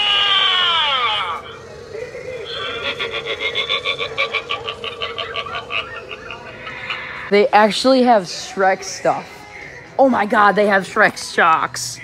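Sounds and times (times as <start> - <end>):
raspy pulsing croak: 0.0 - 7.3.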